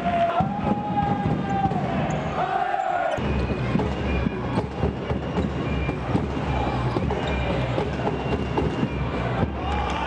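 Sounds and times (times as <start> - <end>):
low hum of hall: 0.0 - 10.0.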